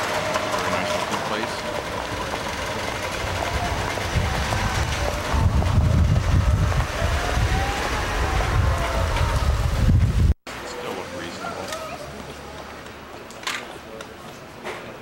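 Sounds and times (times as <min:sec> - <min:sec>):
street traffic passing: 0:00.0 - 0:15.0
wind rumble on microphone: 0:03.0 - 0:10.4.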